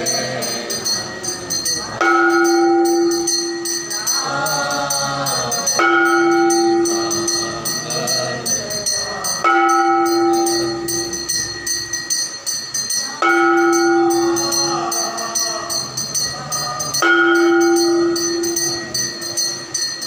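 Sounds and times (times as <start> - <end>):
large temple bell ringing: 0.0 - 20.0
people singing together: 0.0 - 20.0.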